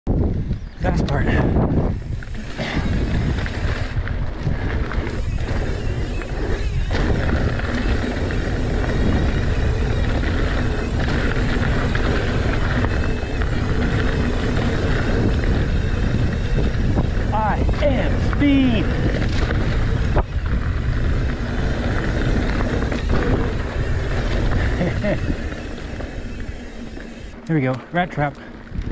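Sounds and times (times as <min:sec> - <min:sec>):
wind rushing over microphone: 0:00.1 - 0:27.7, 0:28.6 - 0:28.9
tyres rolling over dirt and rock: 0:02.4 - 0:28.9.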